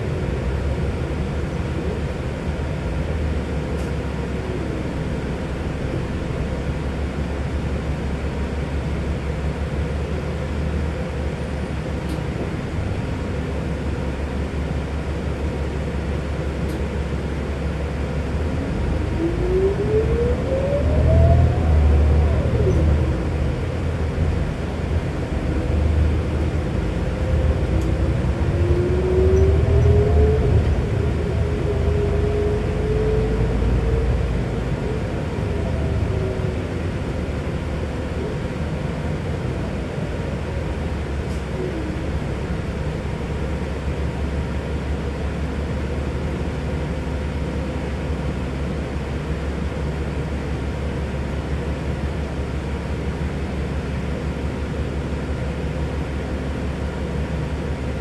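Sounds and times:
bus engine and road rumble: 0:00.0 - 0:58.0
rising engine whine: 0:17.8 - 0:48.0.

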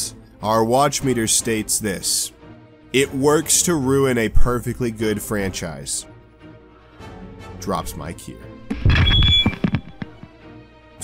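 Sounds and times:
background music: 0:00.0 - 0:11.0
microphone clattering knocks: 0:08.7 - 0:10.4
high feedback squeal: 0:08.8 - 0:10.0.

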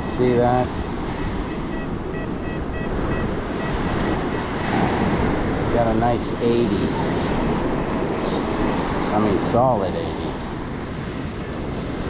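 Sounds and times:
surf: 0:00.0 - 0:12.0
wind on microphone: 0:00.0 - 0:12.0
metal detector short high beeps: 0:01.2 - 0:04.6.

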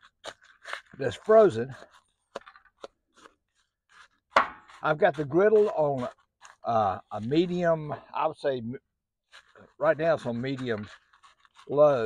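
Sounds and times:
spatula scraping a ceramic bowl: 0:00.0 - 0:07.7, 0:09.3 - 0:12.0.

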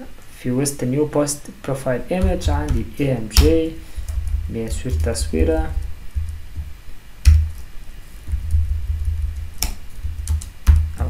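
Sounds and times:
steady low hum: 0:00.0 - 0:11.0
computer keyboard keystrokes: 0:09.5 - 0:10.9.

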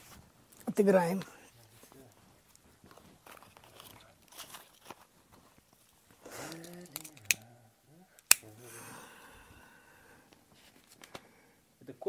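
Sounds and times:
handling and rustling: 0:00.0 - 0:07.4
sharp clicks: 0:08.2 - 0:08.5.

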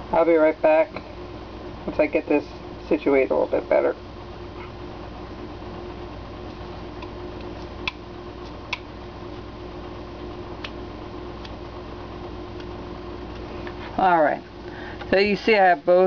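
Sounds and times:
room hum: 0:00.0 - 0:16.0.

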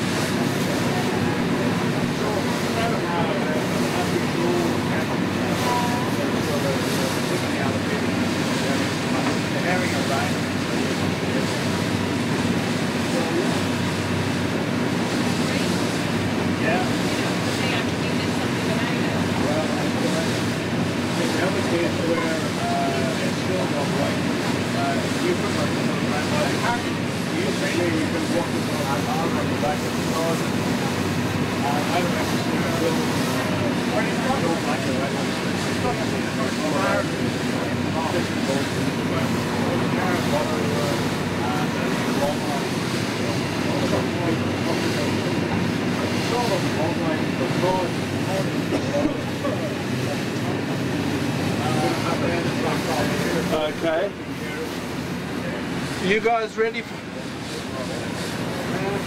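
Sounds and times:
boat engine running: 0:00.0 - 0:59.0
sea washing along hull: 0:00.0 - 0:59.0.

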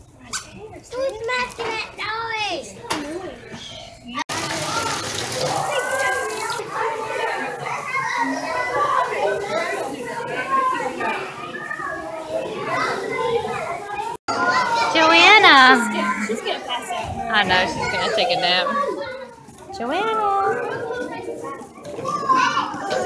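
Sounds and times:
young children babbling: 0:15.4 - 0:16.4.

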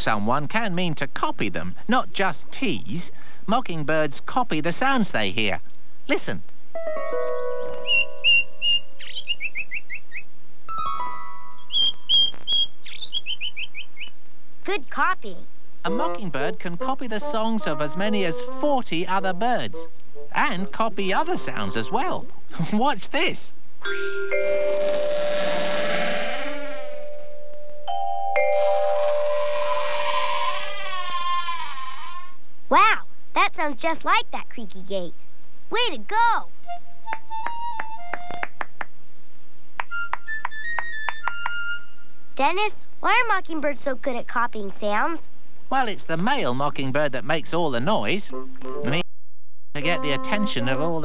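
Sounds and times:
sustained music notes: 0:06.8 - 0:09.0, 0:15.9 - 0:22.3, 0:36.6 - 0:38.5, 0:47.8 - 0:49.0, 0:49.7 - 0:51.0
whistled cartoon bird song: 0:07.8 - 0:10.2, 0:11.5 - 0:14.1, 0:39.9 - 0:42.1
ringing chime-like notes: 0:10.7 - 0:11.7, 0:23.8 - 0:26.1, 0:26.8 - 0:30.2
cartoon bird creaking squeal: 0:28.6 - 0:32.4.

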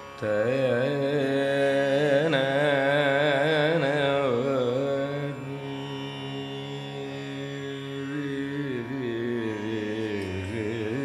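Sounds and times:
tanpura drone: 0:00.0 - 0:11.0.

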